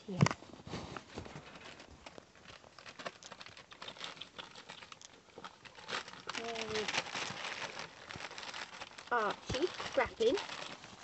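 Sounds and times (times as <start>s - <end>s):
newspaper rustling and crinkling: 0.1s - 11.0s.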